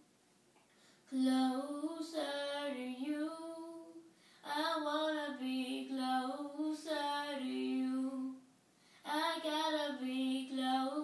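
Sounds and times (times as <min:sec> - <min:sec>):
children singing gospel song: 0:09.1 - 0:11.0.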